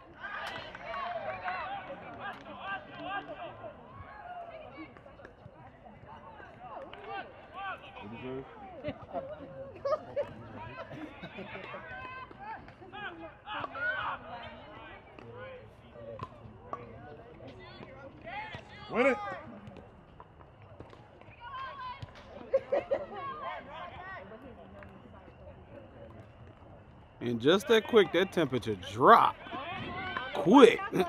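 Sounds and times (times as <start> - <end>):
distant shouts and calls: 9.8 - 16.0.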